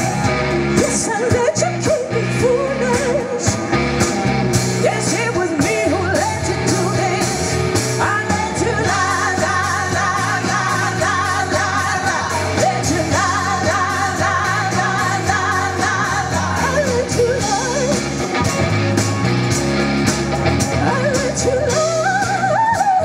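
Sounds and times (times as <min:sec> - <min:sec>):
electric guitar: 0:00.0 - 0:23.0
keyboard: 0:00.0 - 0:23.0
woman singing: 0:00.8 - 0:03.6, 0:04.8 - 0:18.0, 0:20.8 - 0:23.0.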